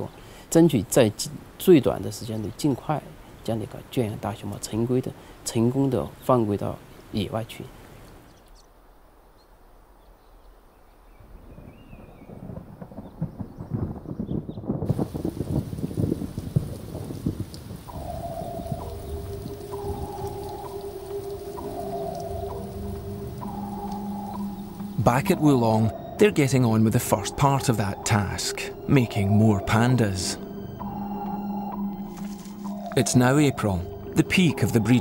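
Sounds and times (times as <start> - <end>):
rain falling on water: 0.0 - 8.4, 11.5 - 35.0
rumbling thunder: 11.5 - 35.0
held musical tones: 17.9 - 35.0.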